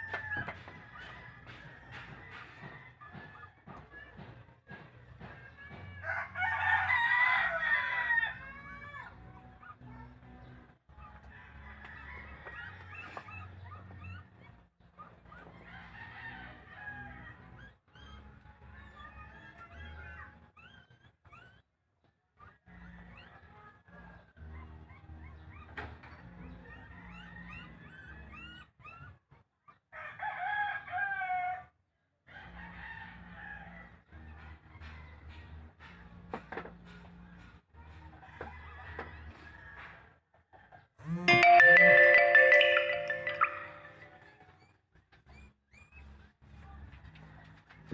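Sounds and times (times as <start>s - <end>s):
rooster crowing: 6.0s - 8.6s, 30.0s - 31.7s.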